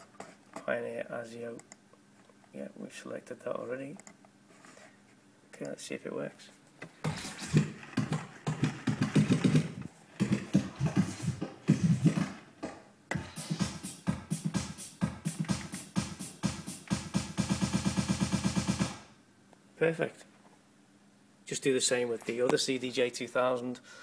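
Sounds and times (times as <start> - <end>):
tech house track: 7.0 - 19.0.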